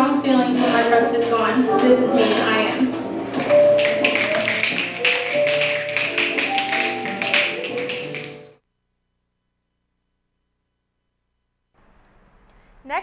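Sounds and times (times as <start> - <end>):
soft background music: 0.0 - 8.6
people finger-snapping: 3.4 - 8.5.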